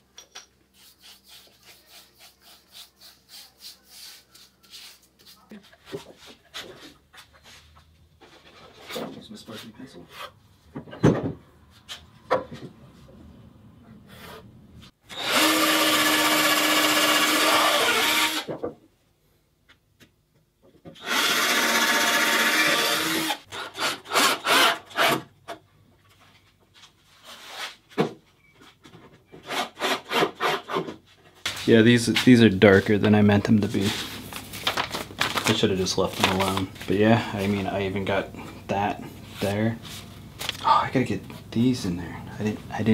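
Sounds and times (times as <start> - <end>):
cordless drill into wood: 15.1 - 18.5, 21.0 - 25.2.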